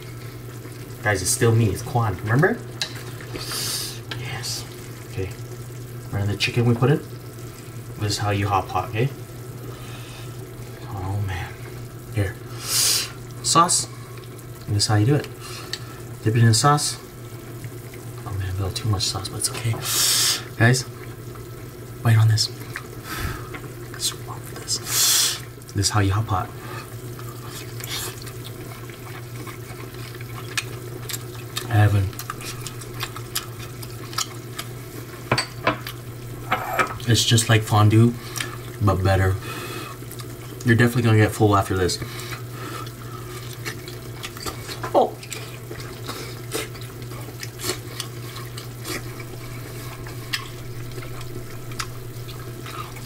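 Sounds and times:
broth bubbling: 0:00.0 - 0:35.3, 0:35.9 - 0:53.0
steady low hum: 0:00.0 - 0:53.0
broth bubbling with small pops: 0:17.1 - 0:19.8, 0:39.9 - 0:40.8.

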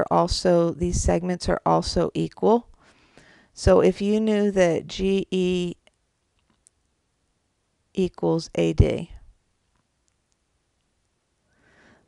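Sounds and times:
person speaking: 0:03.6 - 0:05.8, 0:08.0 - 0:09.3.

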